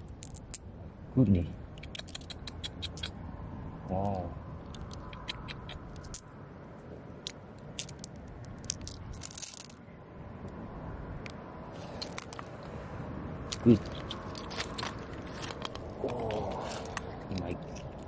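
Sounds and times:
shells and stones clicking: 0.0 - 0.7, 1.7 - 3.1, 4.6 - 6.3, 7.2 - 9.8, 11.2 - 12.7, 13.5 - 18.0
person murmuring: 13.6 - 14.0, 16.0 - 17.6.

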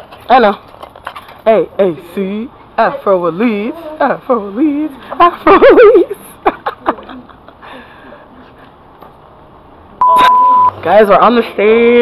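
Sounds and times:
high censor beep: 10.0 - 10.8.

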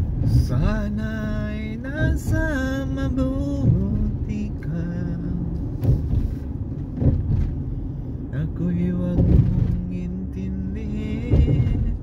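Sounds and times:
car driving on road: 0.0 - 12.0.

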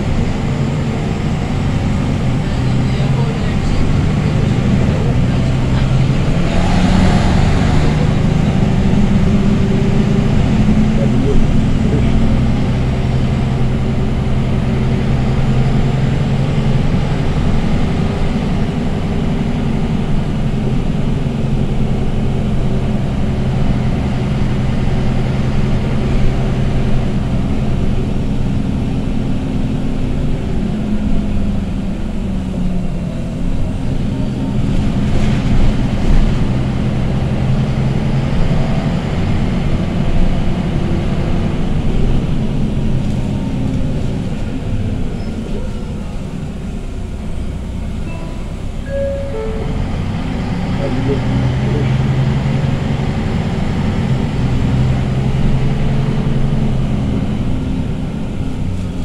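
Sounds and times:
bus diesel engine drone: 0.0 - 59.0.

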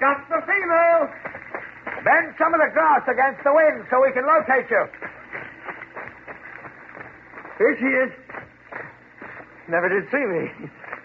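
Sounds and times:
footsteps through grass: 1.1 - 11.0.

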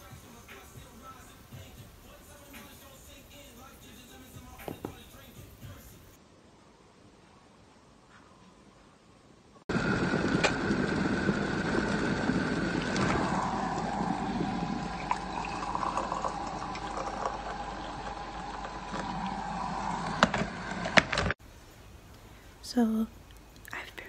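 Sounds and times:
water pouring into a mug: 10.7 - 20.3.

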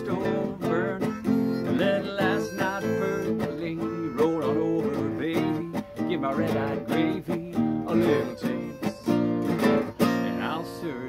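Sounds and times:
acoustic guitar strums: 0.0 - 11.0.

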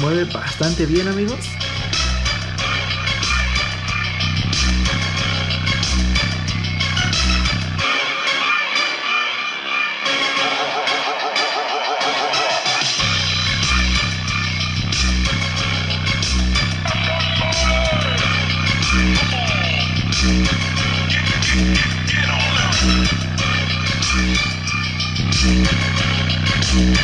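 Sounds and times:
bass-heavy electronic music: 0.0 - 27.0.

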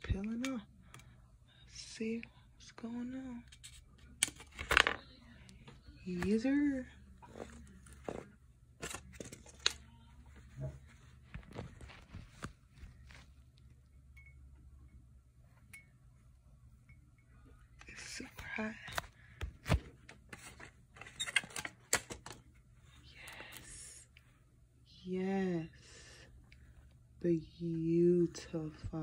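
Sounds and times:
paper crinkling: 7.2 - 13.6.

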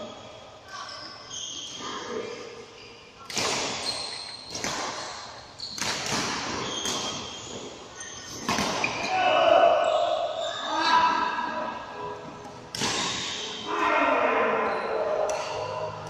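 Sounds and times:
badminton shuttlecock hits: 3.2 - 7.4, 12.7 - 13.4, 15.2 - 15.8.

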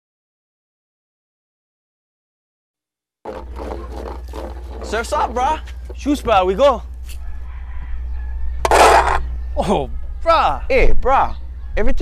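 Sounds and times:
outdoor background noise: 3.3 - 12.0.

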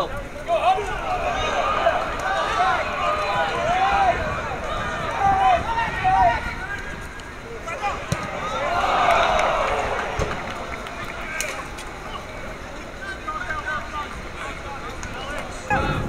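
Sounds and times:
people shouting and calling: 0.0 - 16.0
spectators' voices: 0.0 - 16.0.

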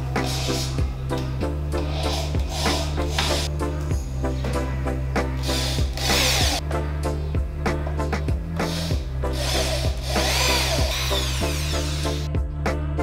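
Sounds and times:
background music with steady beat: 0.0 - 13.0
power drill driving screws into wood: 5.5 - 6.6, 9.4 - 12.2.

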